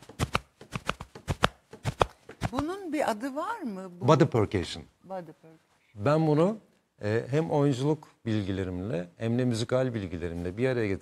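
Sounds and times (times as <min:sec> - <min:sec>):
hand slapping chest: 0:00.0 - 0:02.8.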